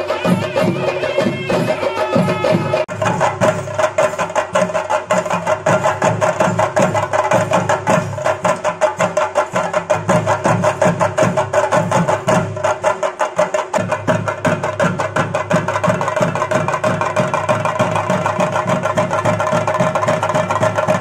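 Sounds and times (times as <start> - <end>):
drum ensemble played with sticks: 0.0 - 21.0.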